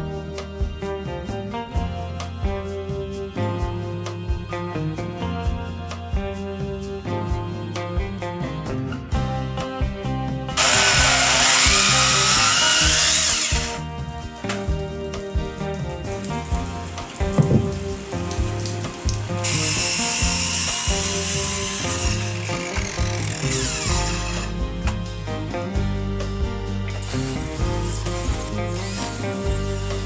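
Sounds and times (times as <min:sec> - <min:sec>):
background music: 0:00.0 - 0:30.0
circular saw cutting wood: 0:10.6 - 0:13.8, 0:17.7 - 0:24.6.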